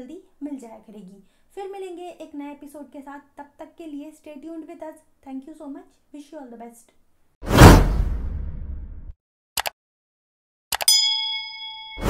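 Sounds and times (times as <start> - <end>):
loud whoosh: 7.4 - 9.1
bright bell-like ding: 10.9 - 12.0.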